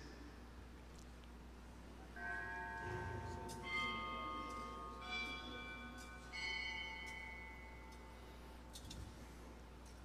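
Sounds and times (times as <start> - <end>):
bell ringing: 2.2 - 8.1.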